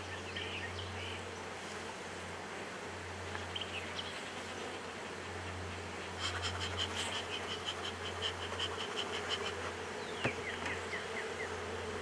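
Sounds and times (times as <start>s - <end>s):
honey bees buzzing: 0.0s - 12.0s.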